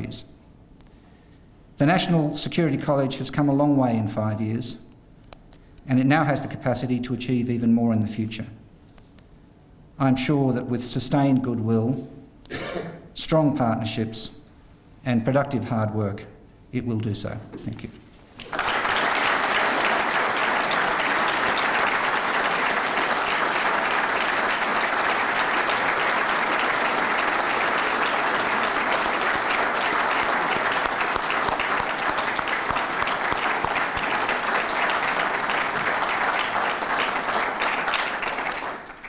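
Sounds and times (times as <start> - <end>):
audience applauding: 18.4 - 39.0.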